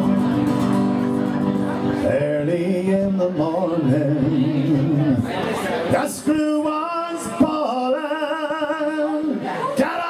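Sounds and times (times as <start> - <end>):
man singing a folk ballad: 1.8 - 10.0.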